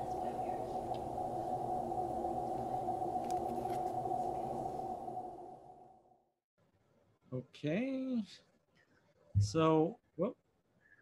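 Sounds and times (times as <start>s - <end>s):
low drone of held tones: 0.0s - 6.1s.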